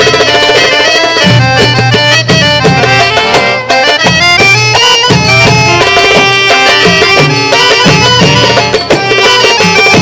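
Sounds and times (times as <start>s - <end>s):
accordion melody: 0.0s - 10.0s
hand drums beating rhythm: 0.0s - 10.0s.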